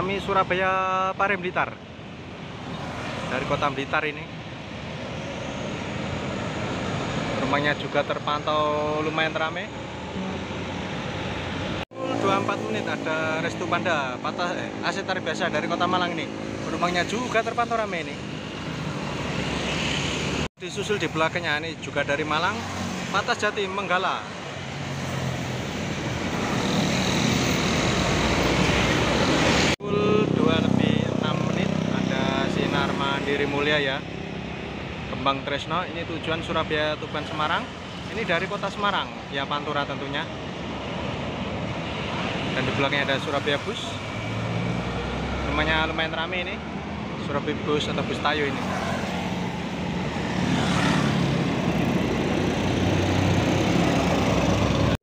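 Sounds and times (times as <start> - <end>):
road and tyre noise: 0.0 - 55.0
bus diesel engine passing: 40.3 - 47.2, 48.4 - 55.0
bus engine driving past: 48.4 - 55.0.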